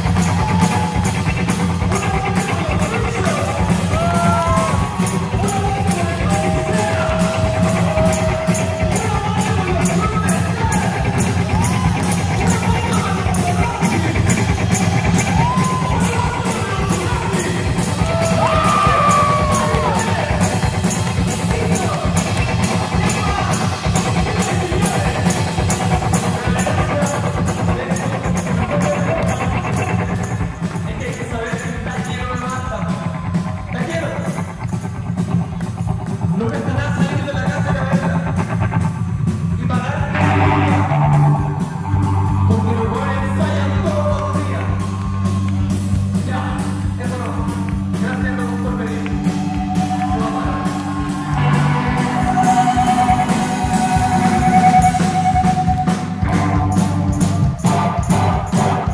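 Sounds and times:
drum kit with cymbals: 0.0s - 58.9s
electric guitar: 0.0s - 58.9s.

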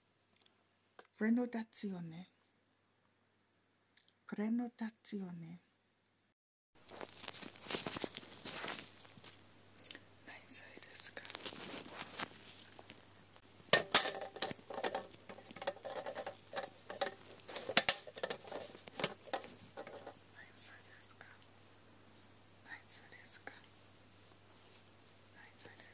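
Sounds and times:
faint rustles: 6.8s - 9.4s, 10.5s - 22.4s, 23.3s - 25.9s
rubber gloves crackling and squeaking: 6.8s - 9.4s, 11.0s - 20.2s.

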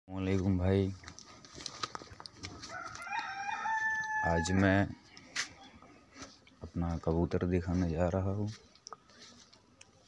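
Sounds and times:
rooster crowing: 2.6s - 4.8s.

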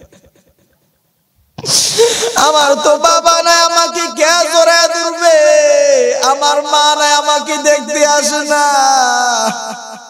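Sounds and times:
man's sharp loud breath: 1.6s - 2.4s
man chanting with echo: 1.7s - 10.0s.

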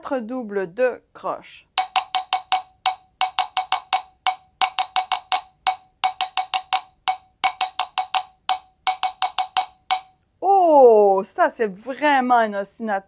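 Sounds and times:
wood block struck with stick: 1.7s - 10.2s.

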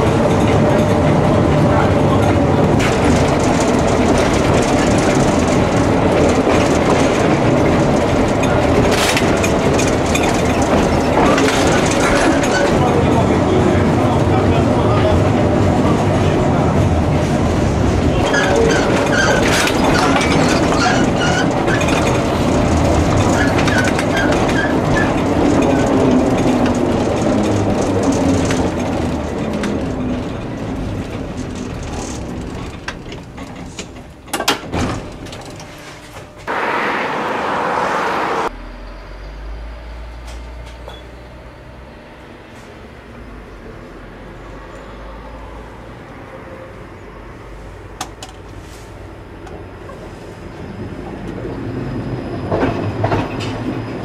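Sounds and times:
tram wheels rumbling: 0.0s - 54.0s
low hum: 36.5s - 44.0s.

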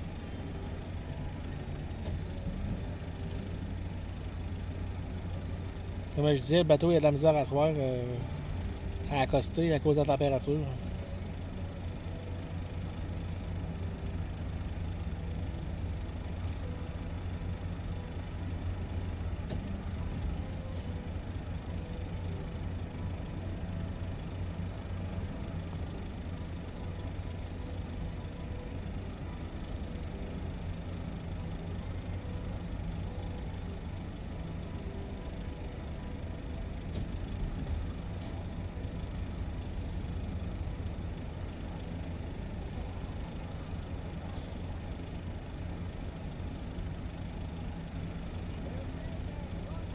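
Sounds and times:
low engine rumble: 0.0s - 49.9s.

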